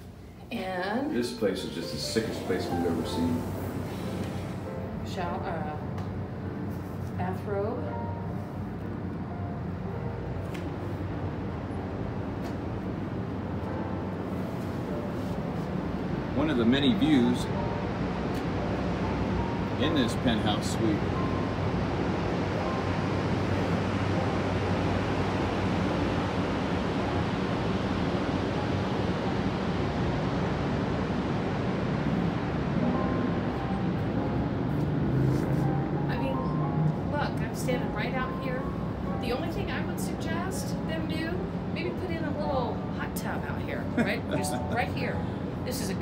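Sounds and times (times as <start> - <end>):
low rumble of city traffic: 0.0 - 46.0
wind rushing over microphone: 20.9 - 42.5.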